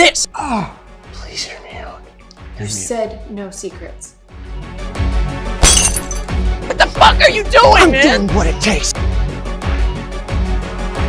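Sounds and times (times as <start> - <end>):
dramatic film music: 0.0 - 5.6, 6.3 - 11.0
glass pane shattering: 5.6 - 6.3
high ringing of glass: 5.6 - 6.3.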